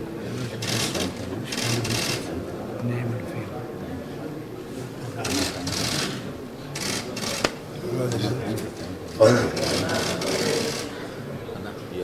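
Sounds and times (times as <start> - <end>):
murmur of voices: 0.0 - 12.0
camera shutters clicking in bursts: 5.2 - 6.1, 6.8 - 7.6, 9.6 - 10.9.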